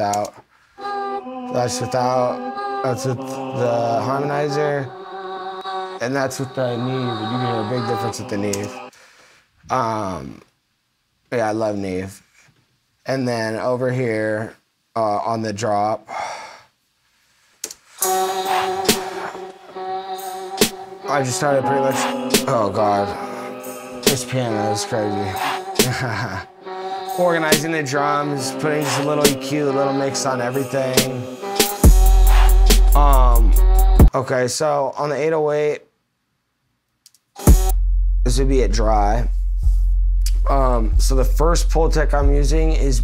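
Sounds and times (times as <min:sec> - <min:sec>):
man sighing: 0:25.3 - 0:26.9
bass hit with deep sub-bass tone: 0:37.5 - 0:43.0.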